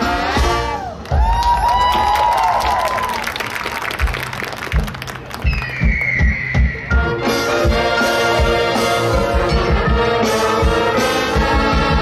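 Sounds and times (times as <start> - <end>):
marching band playing: 0.0 - 2.5, 3.5 - 12.0
crowd cheering and applauding: 0.5 - 6.8.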